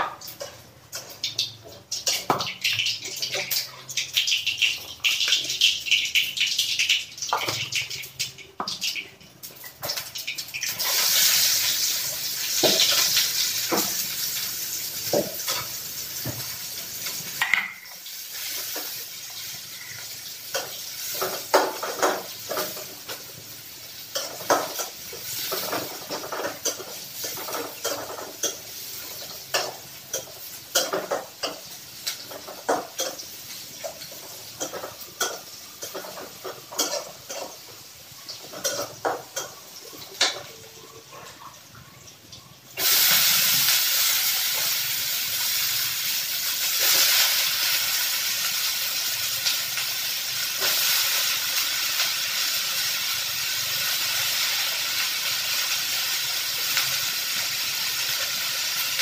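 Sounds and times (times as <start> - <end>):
food sizzling in hot pan: 0.0 - 59.0.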